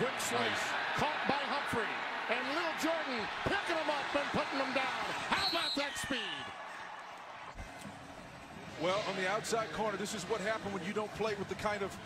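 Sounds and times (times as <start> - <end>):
man talking: 0.0 - 6.5.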